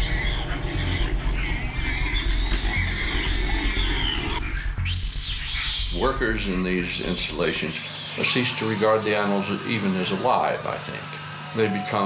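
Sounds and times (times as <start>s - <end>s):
music with low pulsing beat: 0.0s - 8.2s
pigs squealing: 0.0s - 12.0s.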